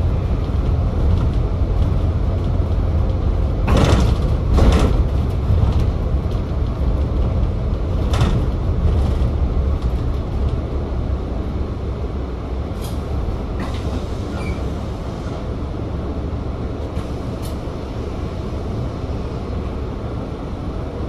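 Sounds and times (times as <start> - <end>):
bus diesel engine rumble: 0.0 - 21.0.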